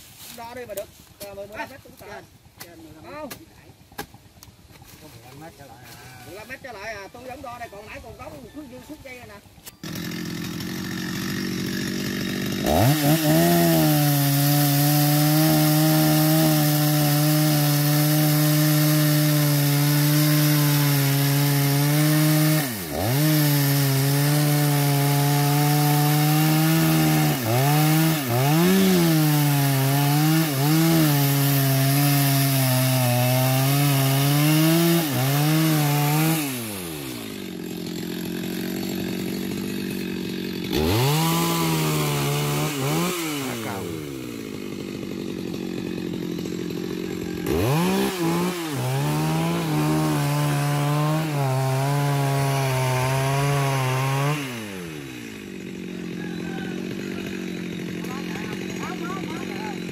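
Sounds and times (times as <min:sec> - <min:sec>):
chainsaw cutting wood: 0:00.0 - 0:07.6, 0:09.0 - 0:59.9.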